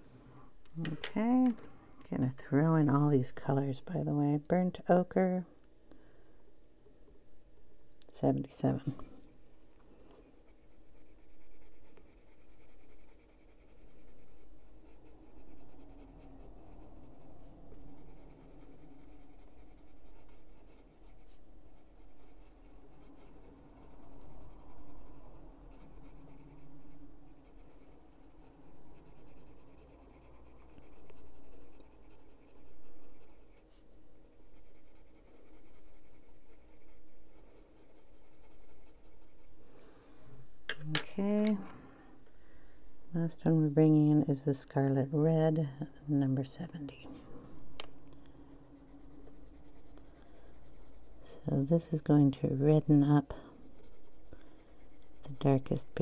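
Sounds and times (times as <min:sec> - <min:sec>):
pencil scratching on paper: 0:10.3 - 0:39.6, 0:48.2 - 0:56.0.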